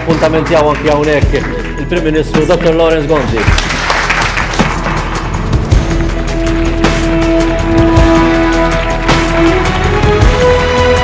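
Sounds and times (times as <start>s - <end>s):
background music with low beat: 0.0s - 11.0s
crowd applauding: 0.0s - 11.0s.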